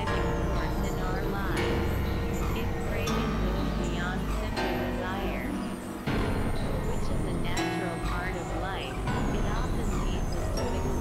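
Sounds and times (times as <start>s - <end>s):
low synthesizer rumble: 0.0s - 11.0s
warbling synthesizer tones: 0.0s - 11.0s.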